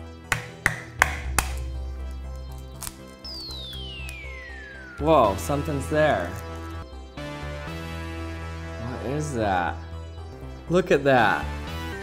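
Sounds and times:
background music: 0.0s - 12.0s
eggshell cracking: 0.3s - 4.4s, 5.7s - 6.8s
high falling whistle: 3.4s - 5.4s.

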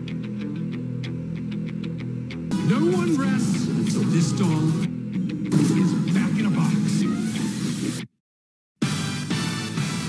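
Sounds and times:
trailer music: 0.2s - 8.2s, 8.8s - 10.0s.

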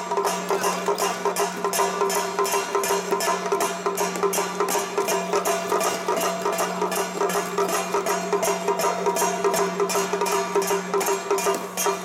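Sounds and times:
lion dance percussion music: 0.0s - 12.0s.

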